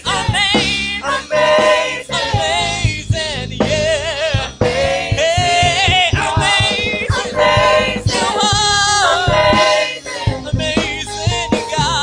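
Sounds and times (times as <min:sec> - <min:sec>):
choir singing with vibrato: 0:00.0 - 0:03.2, 0:04.3 - 0:12.0
steady drum beat: 0:00.0 - 0:12.0.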